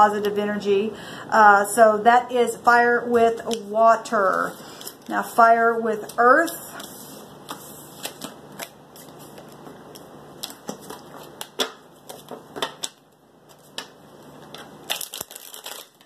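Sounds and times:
cards being shuffled: 6.4 - 16.0.

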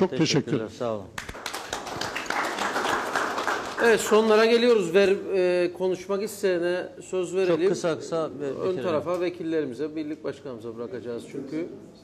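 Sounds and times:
audience applause: 1.2 - 4.4.

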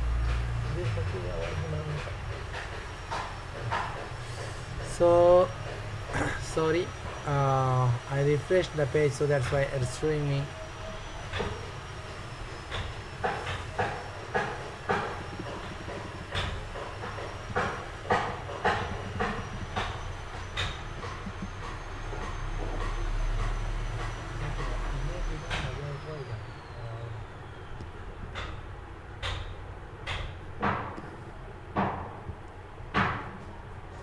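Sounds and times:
faint high whistle: 19.3 - 28.0.

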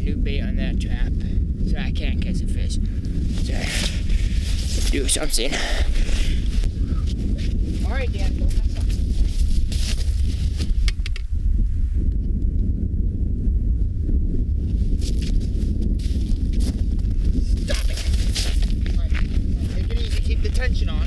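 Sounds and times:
wind rumbling on microphone: 0.0 - 21.0.

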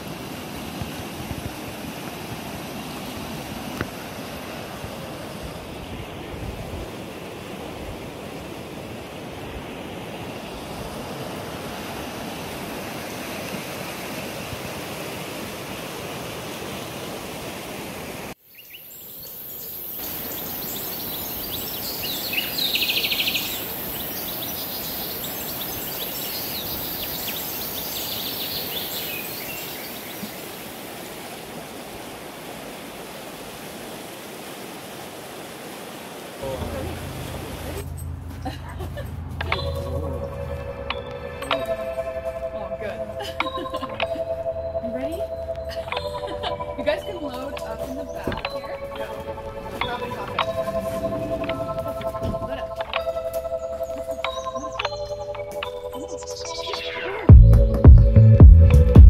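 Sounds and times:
river rushing over gravel: 0.0 - 18.4, 19.0 - 38.1, 40.5 - 44.2, 44.8 - 55.0.

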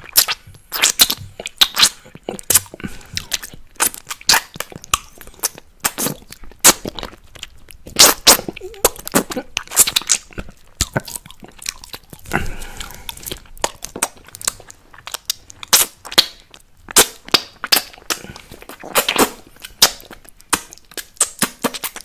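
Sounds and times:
lip smacks and tongue clicks: 0.0 - 22.0
lollipop sucking and licking: 0.0 - 22.0.

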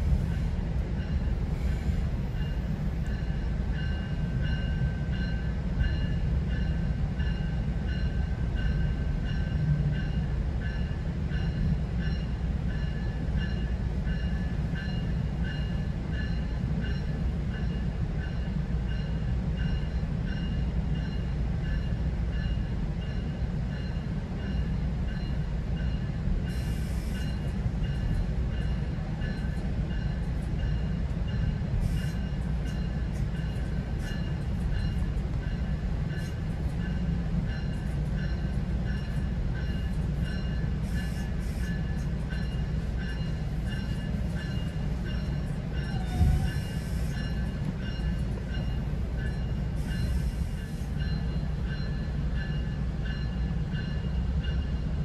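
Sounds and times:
train rumbling on track: 0.0 - 55.0.

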